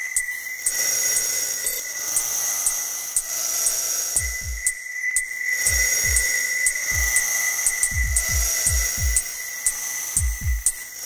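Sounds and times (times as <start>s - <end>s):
sustained high synth tones: 0.0s - 11.0s.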